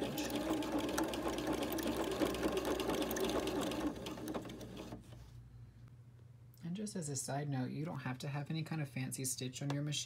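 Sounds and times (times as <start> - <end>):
sewing machine running: 0.0 - 5.0.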